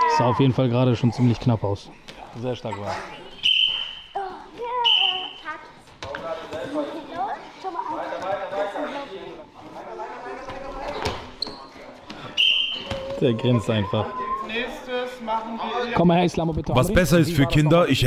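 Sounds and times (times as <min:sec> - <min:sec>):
voices echoing in a hall: 0:00.0 - 0:18.0.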